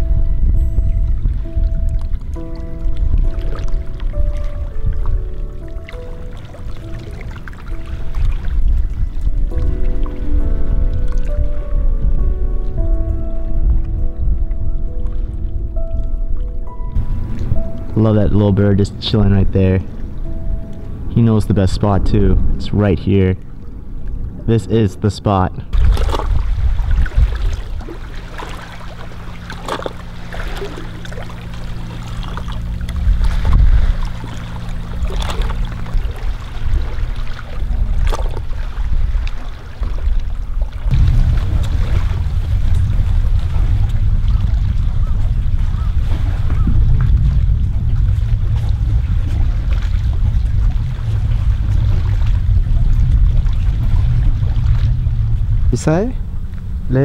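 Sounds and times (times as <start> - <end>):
low motor hum: 0.0 - 24.5, 25.5 - 57.0
wind rumbling on microphone: 0.0 - 57.0
water splashing against rocks: 25.7 - 57.0.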